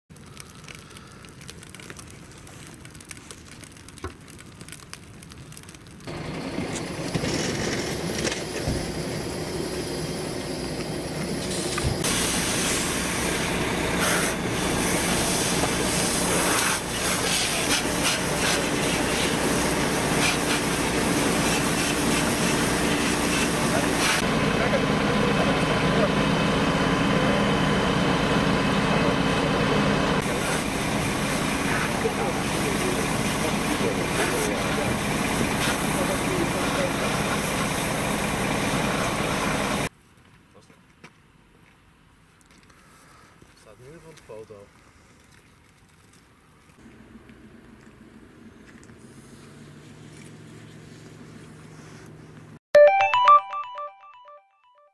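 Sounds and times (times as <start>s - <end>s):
fire hose spraying water: 0.1s - 8.8s, 11.4s - 39.9s
car fire crackling: 0.1s - 9.0s, 11.4s - 24.3s, 30.2s - 39.9s
fire engine running: 0.2s - 39.9s
steam hissing: 11.1s - 24.2s, 30.2s - 39.9s.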